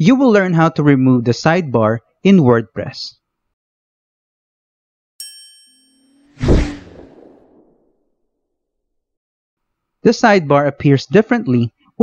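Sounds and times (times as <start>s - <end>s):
whoosh with deep low hit: 6.3s - 7.9s.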